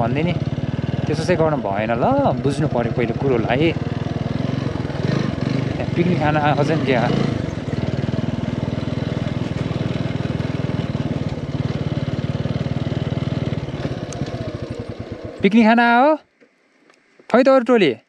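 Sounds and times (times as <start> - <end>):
motorcycle engine running: 0.0 - 16.2.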